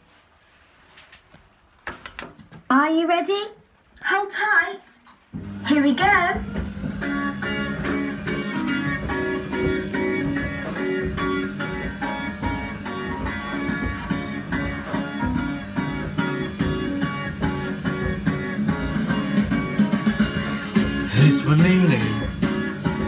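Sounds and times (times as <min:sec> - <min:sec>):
guitar music over loudspeaker: 0:20.8 - 0:22.7.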